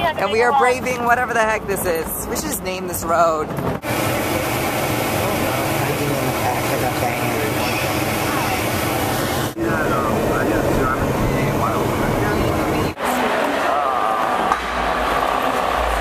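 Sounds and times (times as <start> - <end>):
van driving rumble and hiss: 3.7 - 13.0
faint voices: 5.1 - 16.0.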